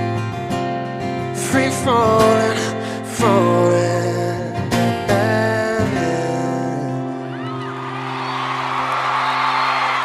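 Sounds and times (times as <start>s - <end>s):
audience cheering and whooping: 7.3s - 10.0s.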